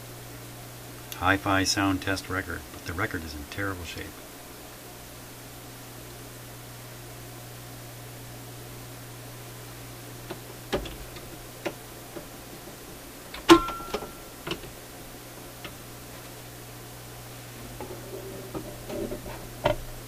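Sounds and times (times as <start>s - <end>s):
steady low hum: 0.0s - 20.0s
record player clicks and knocks: 10.2s - 14.8s, 17.8s - 20.0s.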